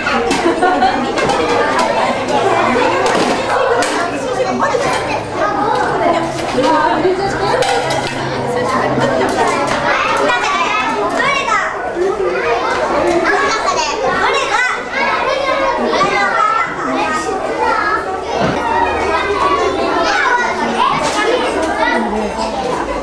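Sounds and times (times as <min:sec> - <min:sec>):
children chattering: 0:00.0 - 0:23.0.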